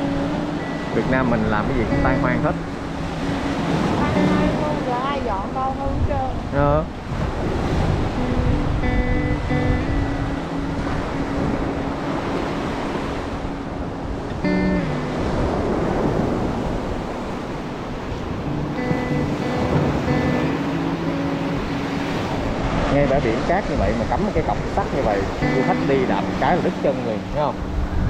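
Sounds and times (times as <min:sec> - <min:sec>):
background music with held notes: 0:00.0 - 0:05.4, 0:07.8 - 0:16.3, 0:18.2 - 0:22.7, 0:23.8 - 0:28.0
waves breaking on a beach: 0:00.0 - 0:28.0
wind on the microphone: 0:00.0 - 0:28.0.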